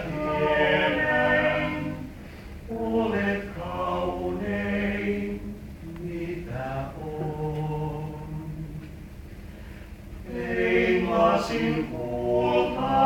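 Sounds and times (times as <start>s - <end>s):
male vocal quartet singing: 0.0s - 2.1s, 2.7s - 8.9s, 10.3s - 13.0s.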